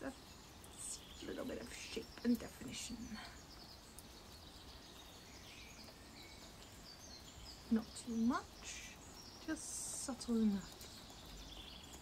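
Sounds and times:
distant birds chirping: 0:00.0 - 0:12.0.

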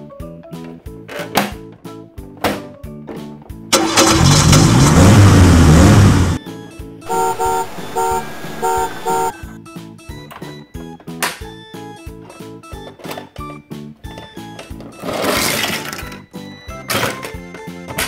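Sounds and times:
engine revving sound effect: 0:03.8 - 0:06.4, 0:07.1 - 0:09.3.

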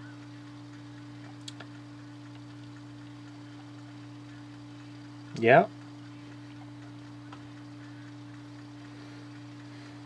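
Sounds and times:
faint ticks: 0:00.0 - 0:10.0
low electrical hum: 0:00.0 - 0:10.0.

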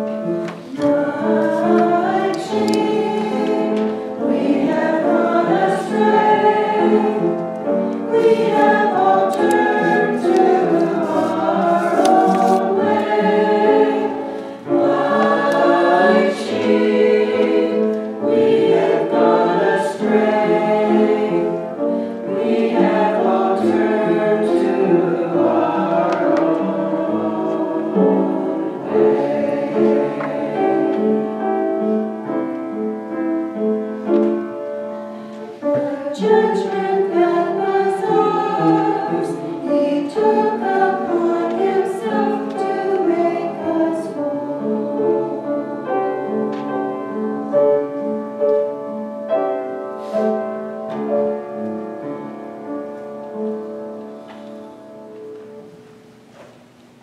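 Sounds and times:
choir singing: 0:00.0 - 0:32.4, 0:35.5 - 0:50.4.

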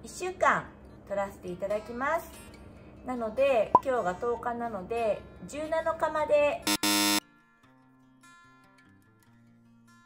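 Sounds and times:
acoustic guitar background music: 0:00.0 - 0:10.0
loud buzzer: 0:06.7 - 0:07.2.

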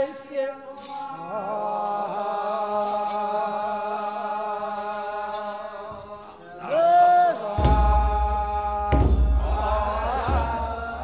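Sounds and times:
voices chanting together: 0:00.0 - 0:11.0
sistrum metallic shimmer: 0:00.7 - 0:11.0.

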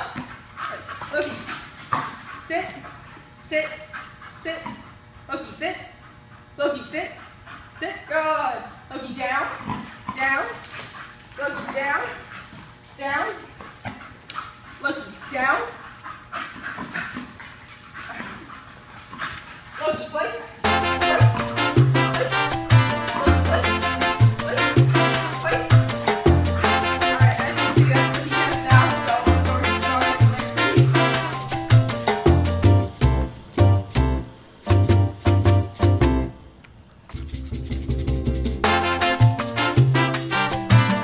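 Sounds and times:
dog vocalizing: 0:22.0 - 0:28.2.

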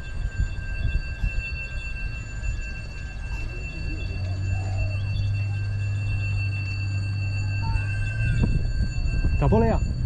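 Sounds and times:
faint high-pitched tones: 0:00.0 - 0:10.0
wind rumble on microphone: 0:00.0 - 0:10.0.

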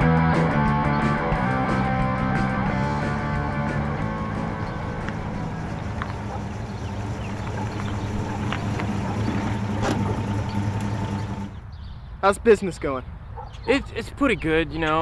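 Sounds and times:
car engine running at low revs: 0:02.6 - 0:11.6.

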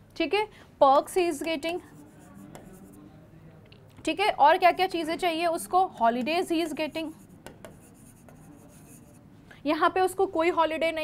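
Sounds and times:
chalk tapping on blackboard: 0:01.4 - 0:03.1, 0:06.2 - 0:09.2
chalk scratching on blackboard: 0:01.4 - 0:03.2, 0:06.5 - 0:09.3.

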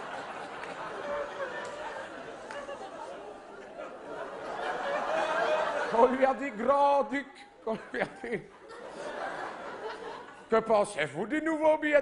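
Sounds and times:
audience murmuring and chattering: 0:00.0 - 0:06.0.

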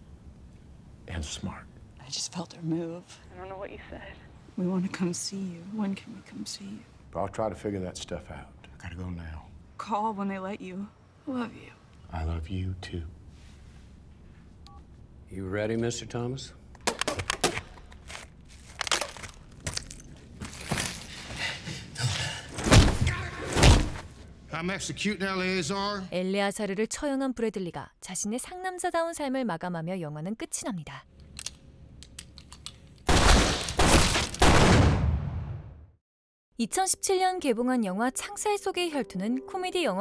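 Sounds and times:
volley of gunfire: 0:33.1 - 0:35.6.

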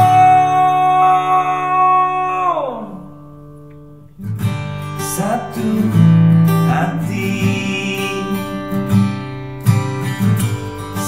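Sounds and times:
man singing a held note: 0:00.0 - 0:03.3
acoustic guitar chord ringing: 0:00.0 - 0:11.0.

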